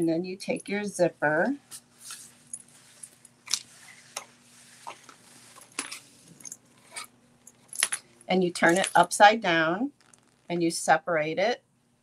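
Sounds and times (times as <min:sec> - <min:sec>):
zipper tape clicks and rustles: 0:09.9 - 0:10.5.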